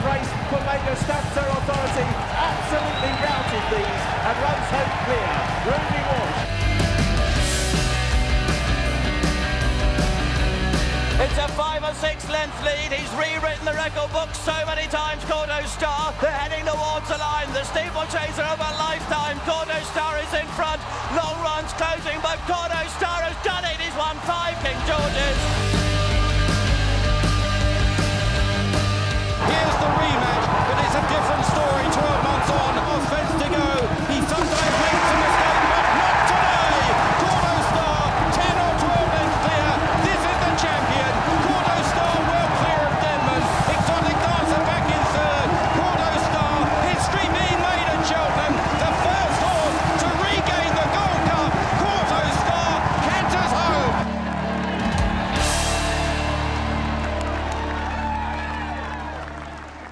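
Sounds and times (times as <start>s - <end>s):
race commentator calling: 0.0s - 6.5s, 11.2s - 25.5s, 29.4s - 54.0s
background music: 0.0s - 59.9s
crowd cheering and shouting: 0.0s - 59.9s.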